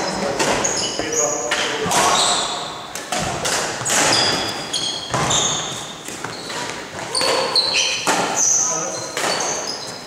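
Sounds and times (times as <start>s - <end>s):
shoes squeaking on wooden floor: 0.0s - 10.0s
sharp knocks of rackets: 1.5s - 2.2s, 2.9s - 5.4s, 6.0s - 8.4s.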